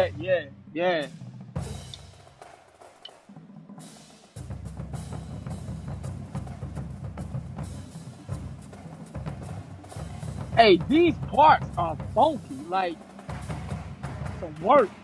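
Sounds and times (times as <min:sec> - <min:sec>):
marching drumline playing: 0:00.0 - 0:00.4, 0:01.0 - 0:15.0.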